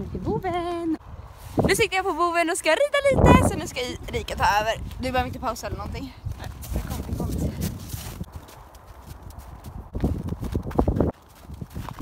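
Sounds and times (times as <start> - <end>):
horse hoofbeats on snow: 4.2 - 12.0.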